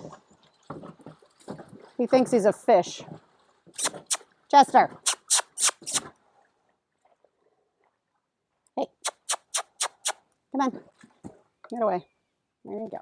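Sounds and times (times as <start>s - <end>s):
mouth clicks: 3.8s - 4.2s, 5.0s - 6.1s, 9.0s - 10.2s.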